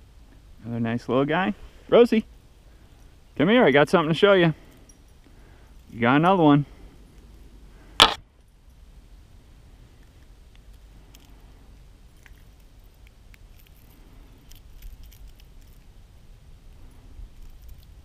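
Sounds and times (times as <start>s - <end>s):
low steady rumble: 0.0s - 18.0s
sharp click: 8.0s - 8.2s.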